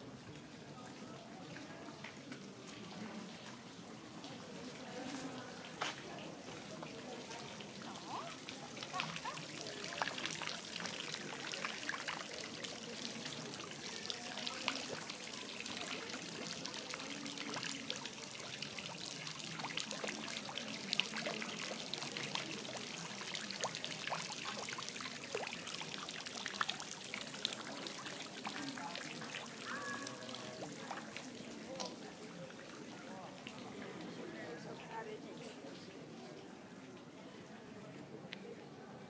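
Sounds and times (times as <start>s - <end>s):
fountain water splashing into basin: 2.4s - 34.3s.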